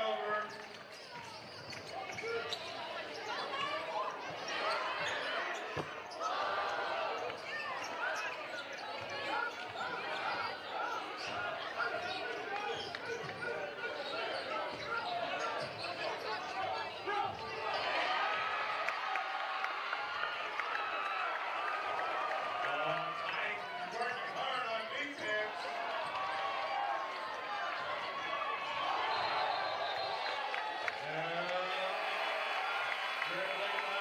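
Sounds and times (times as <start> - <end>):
crowd chattering and shouting: 0.0 - 34.0.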